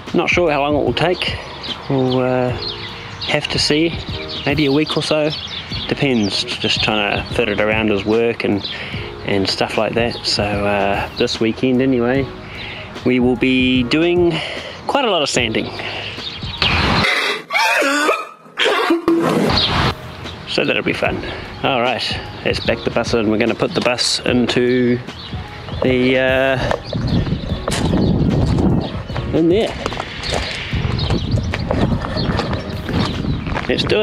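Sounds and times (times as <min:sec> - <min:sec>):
short noisy gasps: 0:17.0 - 0:17.5
man crying and sobbing: 0:17.0 - 0:19.1
footsteps crunching on gravel: 0:25.3 - 0:34.0
wind rumble on microphone: 0:25.3 - 0:34.0.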